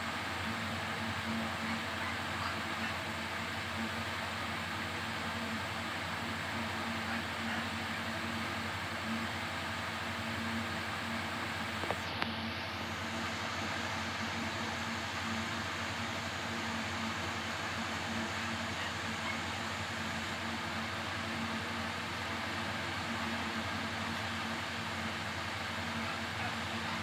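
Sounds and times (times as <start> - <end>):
background hum and hiss: 0.0 - 27.0.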